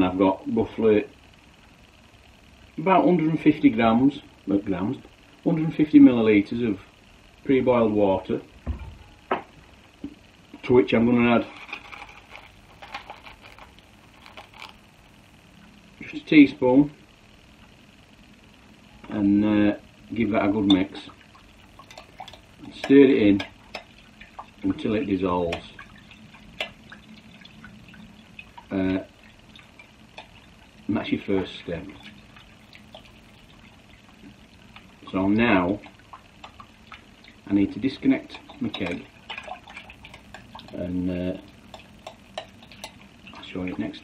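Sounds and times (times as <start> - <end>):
teaspoon ticks and scrapes: 11.4 - 14.8, 21.7 - 24.5, 25.4 - 28.7, 29.5 - 30.6, 38.3 - 43.4.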